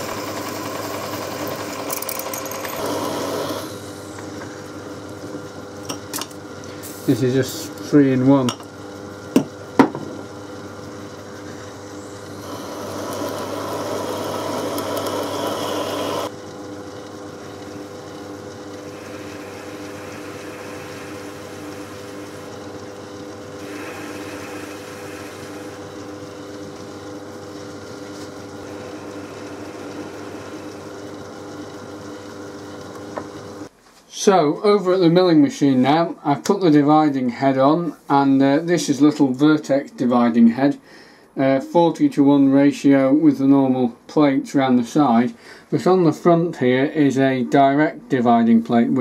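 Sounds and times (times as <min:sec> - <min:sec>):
drill cutting into metal: 0:00.0 - 0:03.8, 0:12.3 - 0:16.3, 0:18.7 - 0:26.9, 0:28.4 - 0:31.5
lathe humming: 0:00.0 - 0:33.7.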